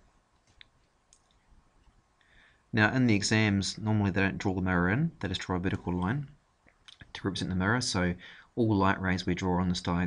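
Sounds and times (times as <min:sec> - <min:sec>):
faint clicks: 0:00.4 - 0:02.3.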